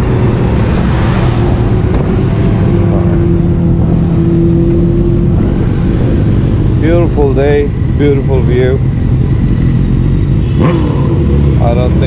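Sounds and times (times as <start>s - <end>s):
motorcycle engine running: 0.0s - 12.0s
road noise: 0.0s - 12.0s
rushing wind: 0.0s - 12.0s.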